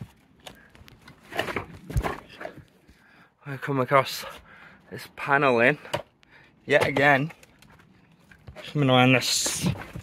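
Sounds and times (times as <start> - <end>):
scuffs and knocks on wood: 6.7 - 10.0.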